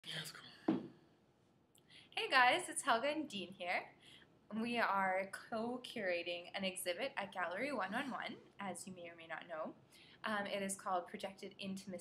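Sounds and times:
faint whispering: 0.0 - 0.7
person bumping chair: 0.7 - 1.0.

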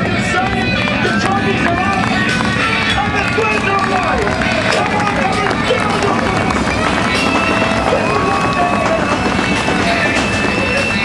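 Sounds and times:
race car engines running: 0.0 - 11.0.

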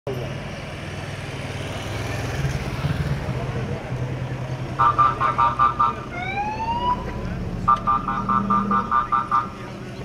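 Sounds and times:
vehicle engines humming: 0.1 - 10.0.

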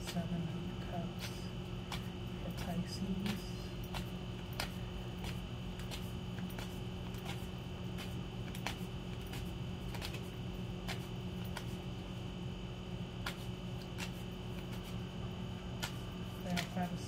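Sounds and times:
steady background hum: 0.0 - 17.0
cards being shuffled: 1.1 - 11.9, 13.2 - 15.0, 15.8 - 17.0.

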